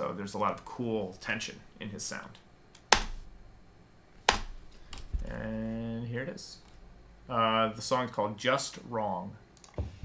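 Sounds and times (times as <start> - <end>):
sharp clicks: 9.6 - 9.8.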